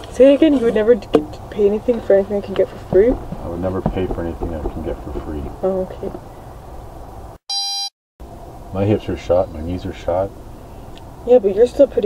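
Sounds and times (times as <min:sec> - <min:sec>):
voice recording background noise: 0:00.1 - 0:06.2
short electronic beep: 0:07.5 - 0:07.9.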